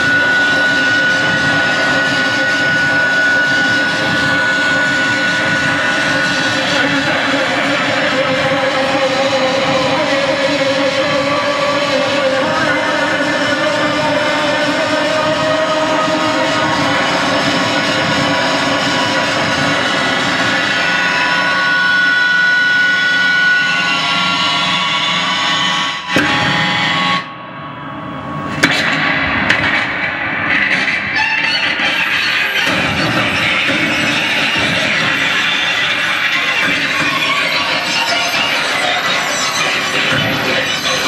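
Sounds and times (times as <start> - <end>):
harsh distorted noise music: 0.0 - 41.0.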